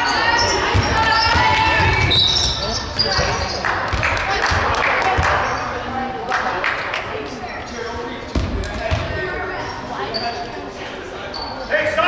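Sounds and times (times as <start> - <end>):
echoing chatter of people: 0.0 - 12.0.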